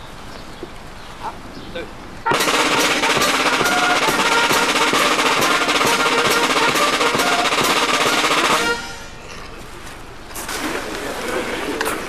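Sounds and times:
brass horns sustained notes: 2.2 - 9.3
snare drums steady beat: 2.3 - 9.1.

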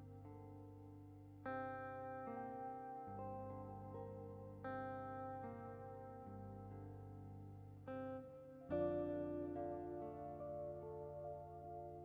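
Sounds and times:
gentle instrumental music chords: 0.0 - 12.0.

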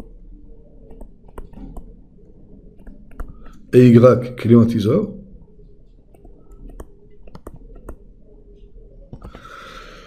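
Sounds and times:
stylus clicking on tablet screen: 0.8 - 2.0, 2.7 - 3.6, 5.8 - 8.1.

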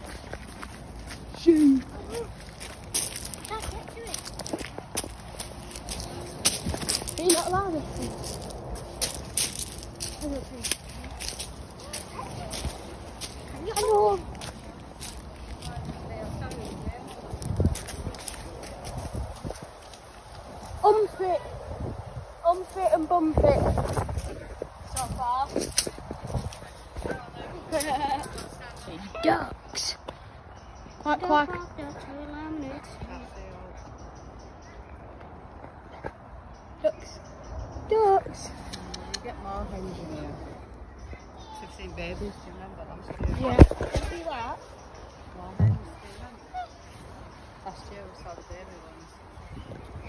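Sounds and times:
footsteps on gravel: 0.0 - 21.0, 22.5 - 29.0
faint voices: 0.0 - 50.0.

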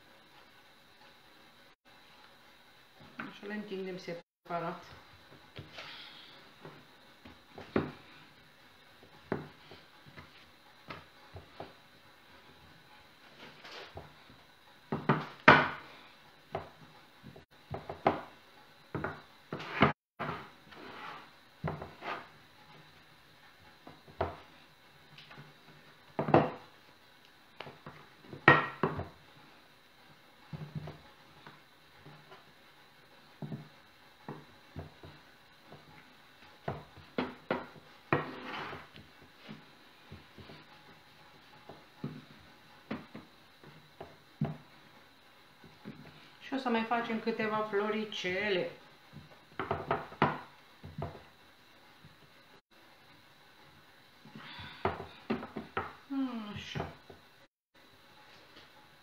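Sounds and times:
rolling pin knocking on wooden board: 14.9 - 15.8, 16.5 - 20.5, 26.1 - 26.7, 27.6 - 29.2, 36.6 - 38.8, 41.6 - 44.7, 49.6 - 51.3.

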